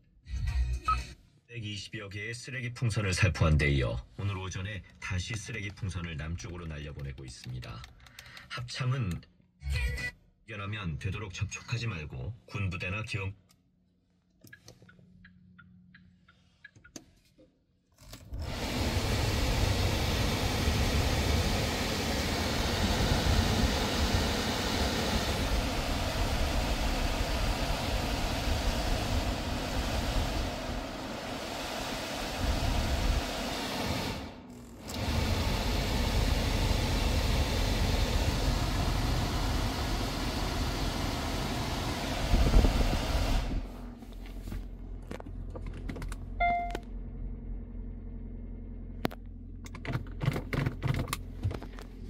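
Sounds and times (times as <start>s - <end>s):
car blower fan rushing air: 18.3s - 44.9s.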